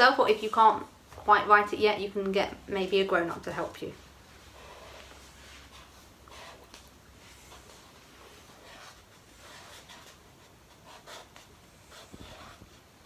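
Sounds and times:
pen writing on paper cup: 0:08.5 - 0:12.8.

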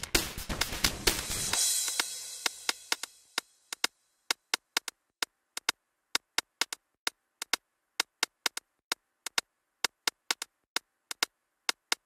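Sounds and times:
sharp percussive clicks: 0:00.0 - 0:12.0.

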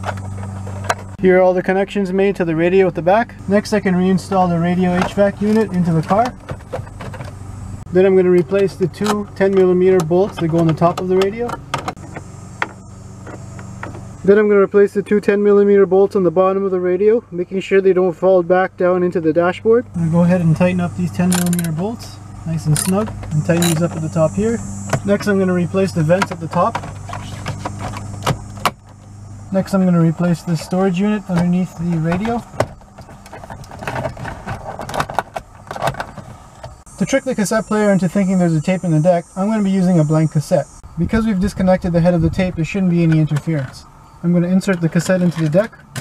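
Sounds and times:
steady low hum: 0:00.0 - 0:46.0
bolt clicking: 0:21.3 - 0:21.8, 0:22.8 - 0:23.9
plastic box clicking and rattling: 0:32.2 - 0:36.3.

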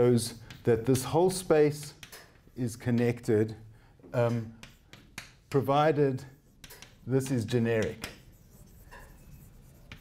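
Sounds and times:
chalk tap: 0:04.2 - 0:05.7, 0:06.3 - 0:10.0
chalk scratching on blackboard: 0:04.6 - 0:10.0.

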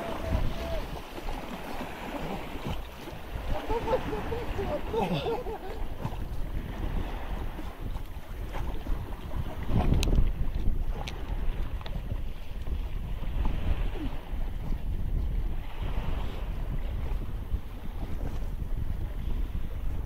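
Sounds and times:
swimmer splashing: 0:00.0 - 0:06.1
wind buffeting microphone: 0:00.0 - 0:20.0.

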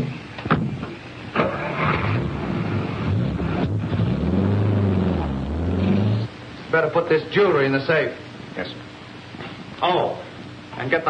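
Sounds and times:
car engine pulling away: 0:01.4 - 0:06.3.

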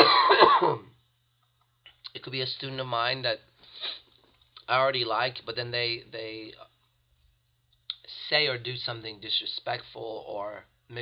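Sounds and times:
man coughing: 0:00.0 - 0:00.9.

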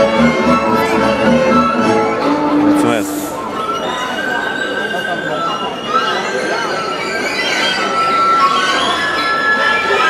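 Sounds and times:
violins playing long high notes: 0:00.0 - 0:06.2.

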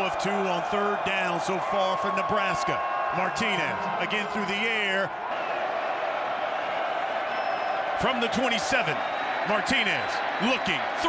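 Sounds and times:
stadium crowd murmur: 0:00.0 - 0:11.0.

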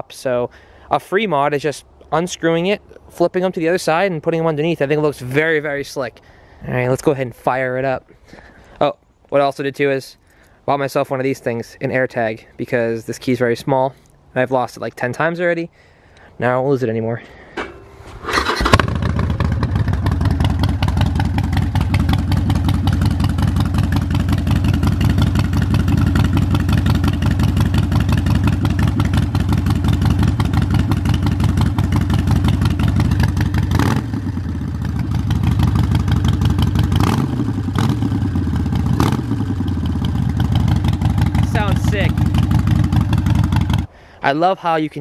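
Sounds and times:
air intake sucking: 0:17.6 - 0:19.0
motorcycle engine idling and revving: 0:17.6 - 0:43.9.

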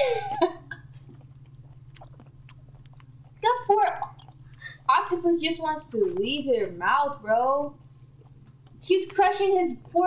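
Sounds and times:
steady low hum: 0:00.0 - 0:10.0
wet mouth clicks and smacks: 0:01.1 - 0:04.7.

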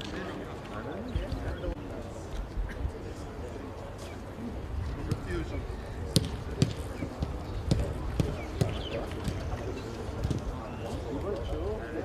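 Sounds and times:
football kicks: 0:06.1 - 0:11.1.

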